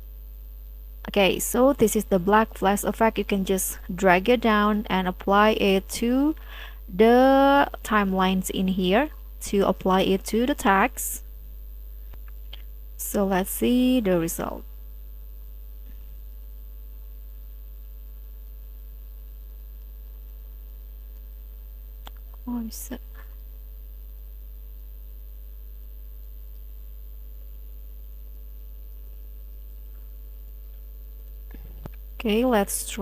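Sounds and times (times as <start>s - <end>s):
low electrical mains hum: 0.0s - 33.0s.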